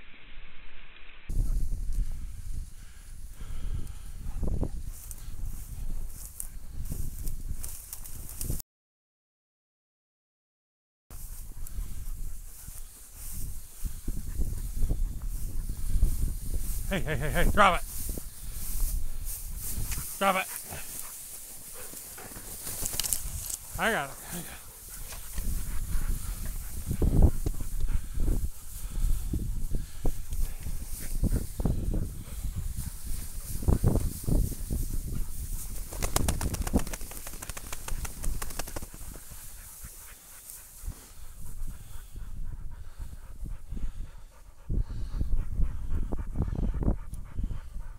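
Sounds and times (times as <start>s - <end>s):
dry grass rustling and crackling: 4.6s - 8.6s, 11.1s - 41.3s.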